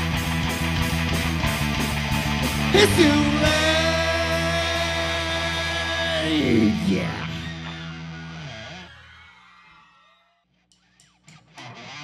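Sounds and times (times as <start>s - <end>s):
electric guitars ringing: 0.0s - 9.0s.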